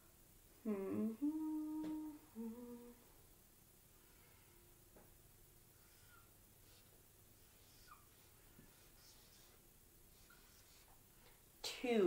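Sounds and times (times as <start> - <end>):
woman humming: 0.6 - 3.1.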